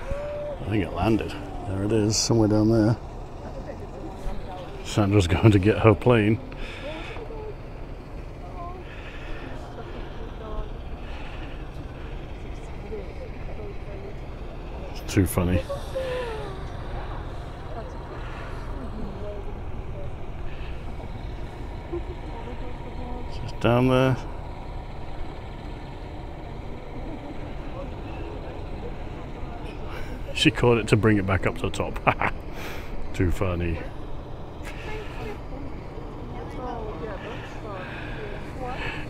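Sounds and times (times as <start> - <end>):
faint voices: 0.0 - 39.0
low background rumble: 0.0 - 39.0.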